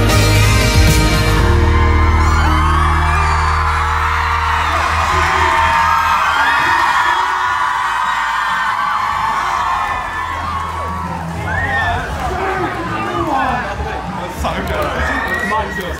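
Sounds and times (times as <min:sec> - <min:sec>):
crowd cheering and screaming: 0:00.0 - 0:15.9.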